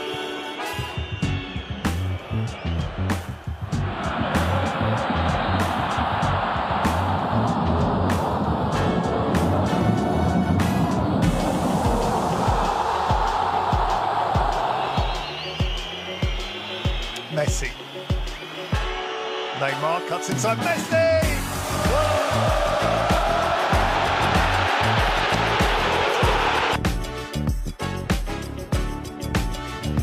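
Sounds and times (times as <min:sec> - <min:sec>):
stadium crowd noise: 0:00.0 - 0:26.8
background music with steady beat: 0:00.0 - 0:30.0.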